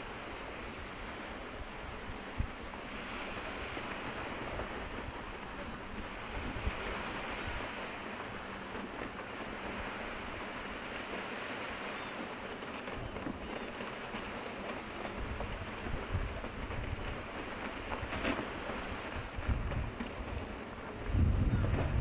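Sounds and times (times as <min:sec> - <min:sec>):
sea noise: 0:00.0 - 0:22.0
wind: 0:00.0 - 0:22.0
wind on microphone: 0:00.0 - 0:22.0.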